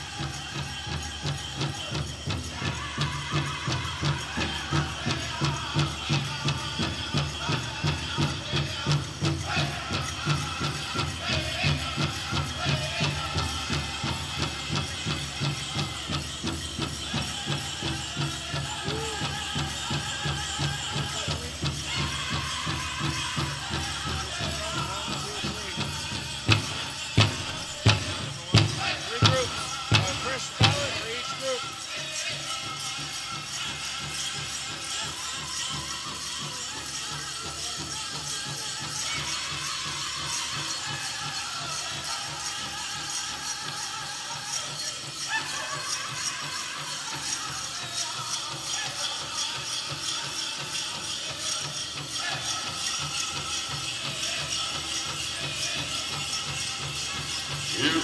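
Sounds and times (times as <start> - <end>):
bells jingling and rattling: 0.0 - 58.0
drum beats: 0.0 - 58.0
crowd voices: 3.8 - 38.3, 48.9 - 58.0.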